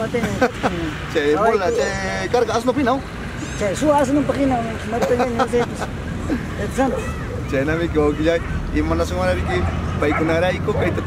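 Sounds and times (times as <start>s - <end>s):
street traffic rumble: 0.0s - 11.0s
man talking: 1.0s - 3.1s, 7.4s - 11.0s.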